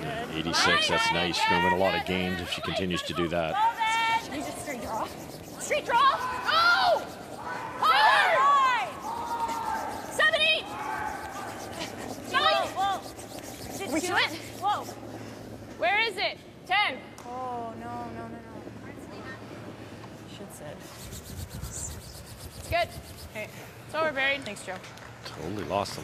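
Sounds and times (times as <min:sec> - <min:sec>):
players shouting sweeping calls: 0:00.5 - 0:15.0
brooms scrubbing on ice: 0:00.5 - 0:15.4, 0:20.7 - 0:23.6.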